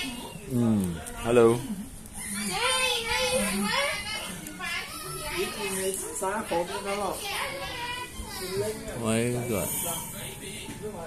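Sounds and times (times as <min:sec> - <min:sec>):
children talking and calling: 0:00.0 - 0:10.2.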